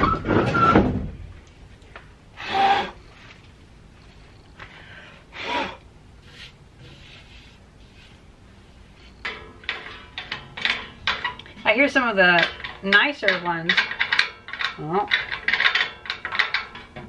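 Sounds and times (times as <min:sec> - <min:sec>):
hands scraping wood and metal: 0:06.2 - 0:14.2.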